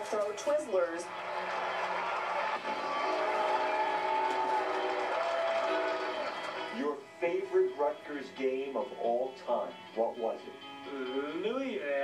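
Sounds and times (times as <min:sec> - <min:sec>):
stadium crowd noise: 0:01.0 - 0:06.8.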